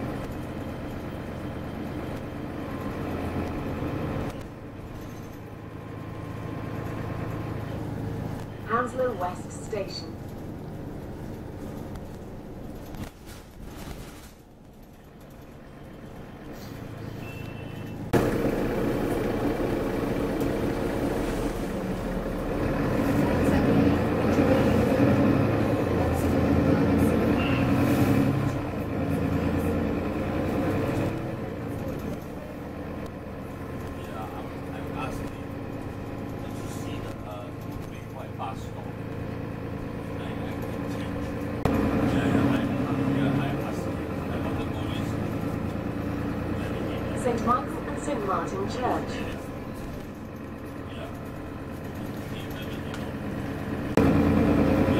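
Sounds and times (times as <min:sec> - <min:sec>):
bus diesel engine running: 0:00.0 - 0:54.9.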